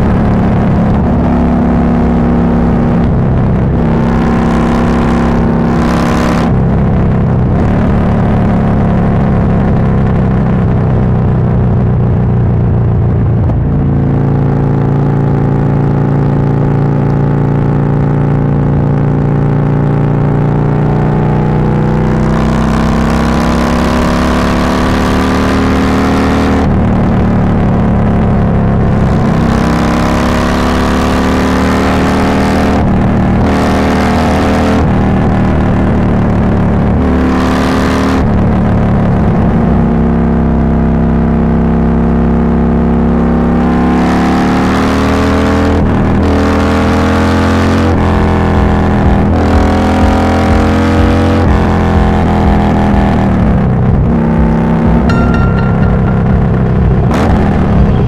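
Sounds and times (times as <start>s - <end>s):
wind and road noise: 0.0s - 31.3s.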